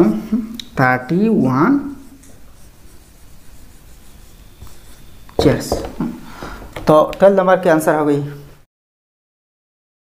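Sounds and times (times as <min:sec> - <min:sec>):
marker writing on whiteboard: 0:01.9 - 0:07.4.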